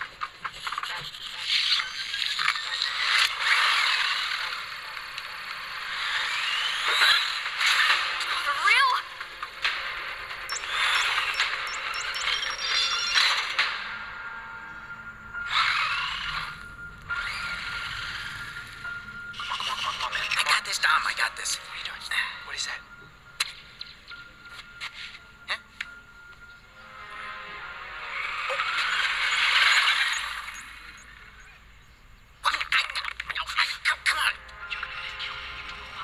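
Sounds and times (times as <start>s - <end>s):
toy car electric motor whine: 1.1s - 8.0s, 15.5s - 18.8s, 28.3s - 30.9s.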